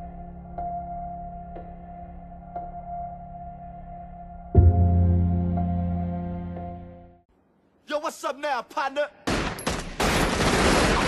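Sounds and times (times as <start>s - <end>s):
rapid gunfire: 10.0s - 11.0s.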